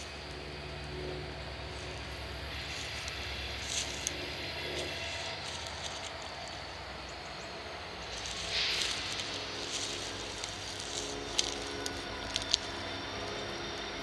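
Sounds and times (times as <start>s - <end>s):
distant diesel locomotive drone: 0.0s - 14.0s.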